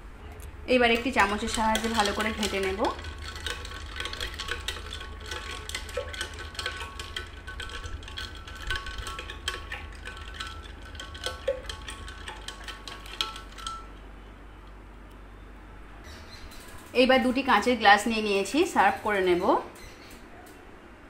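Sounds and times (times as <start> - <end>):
spoon and ice clinking in glass: 0.9 - 14.0.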